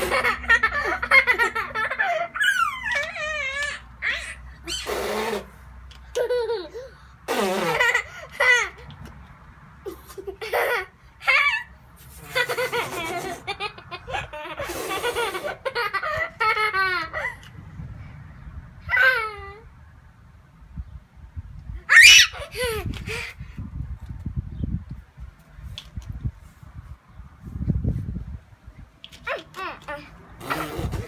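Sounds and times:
toddler squealing with laughter: 0:00.0 - 0:05.5, 0:10.5 - 0:17.4, 0:18.9 - 0:19.7, 0:21.8 - 0:23.3
toddler squealing: 0:02.3 - 0:05.5, 0:21.9 - 0:22.7.

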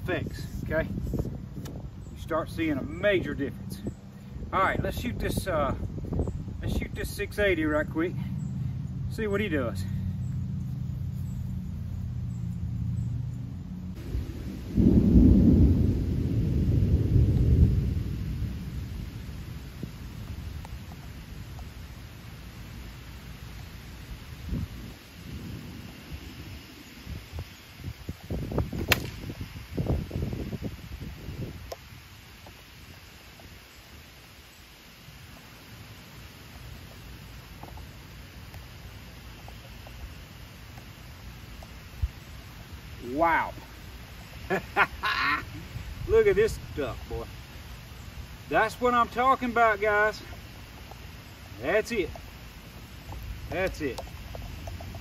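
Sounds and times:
light rain: 0:11.9 - 0:55.0
thunder rumbling: 0:13.8 - 0:20.6
arrow punching through plywood: 0:28.8 - 0:29.2.

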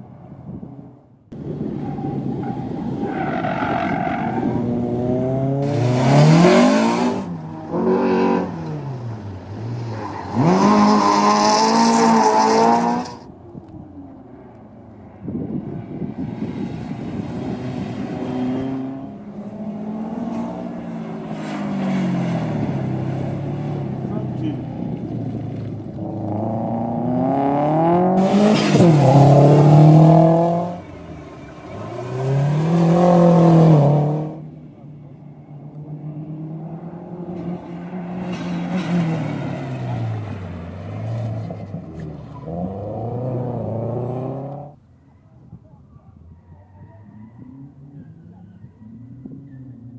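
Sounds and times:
rally car engines revving: 0:01.3 - 0:13.3, 0:15.3 - 0:44.8.

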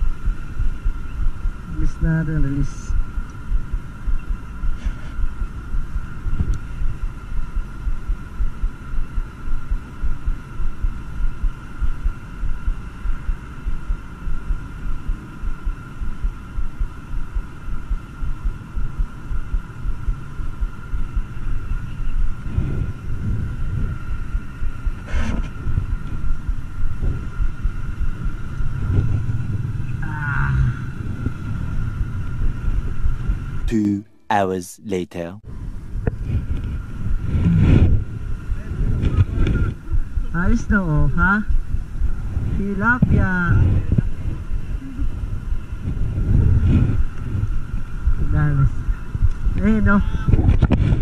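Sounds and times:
wind buffeting microphone: 0:00.0 - 0:12.7, 0:18.0 - 0:33.7, 0:35.5 - 0:51.0
faint steady high tone: 0:26.0 - 0:35.8.

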